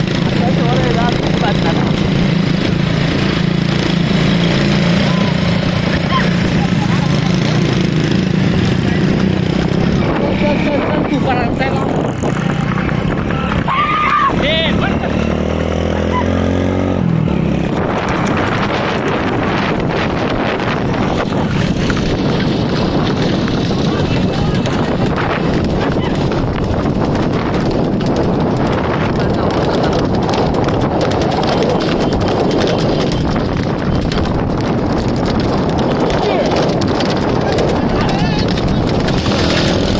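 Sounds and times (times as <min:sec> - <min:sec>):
hoofbeats galloping on dirt road: 0:00.0 - 0:39.9
motorcycle engines running: 0:00.0 - 0:39.9
men shouting: 0:13.3 - 0:16.5.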